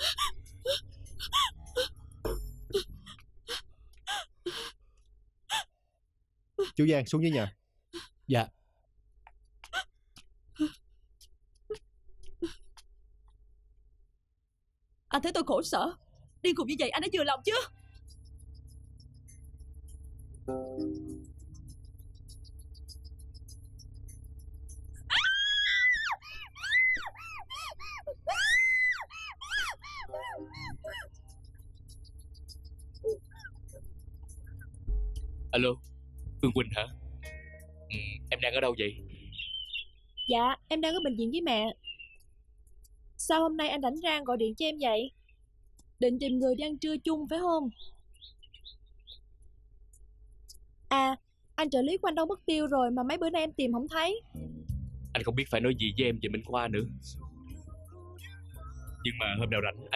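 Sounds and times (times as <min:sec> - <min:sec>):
woman gasping and sobbing: 0:00.0 - 0:04.9
low background music: 0:16.4 - 0:26.0, 0:30.1 - 0:39.6, 0:54.2 - 0:59.9
woman screaming: 0:25.1 - 0:31.1.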